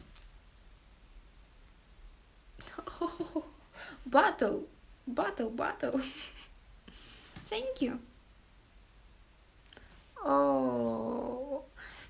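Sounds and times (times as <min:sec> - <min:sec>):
faint low hum: 0:00.0 - 0:12.0
woman speaking: 0:04.0 - 0:06.1, 0:07.5 - 0:08.1, 0:10.2 - 0:11.7.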